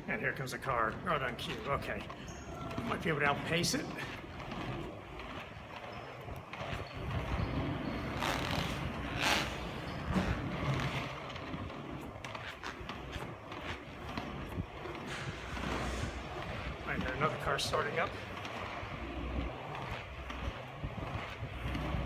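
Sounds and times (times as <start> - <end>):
inline skate wheels rolling on asphalt: 0.0 - 22.0.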